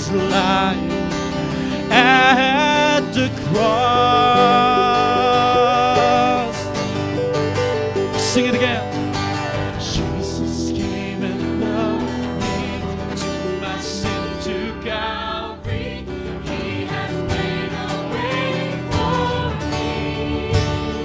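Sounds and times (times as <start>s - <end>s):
choir singing: 0.0s - 21.0s
strummed acoustic guitar: 0.0s - 21.0s.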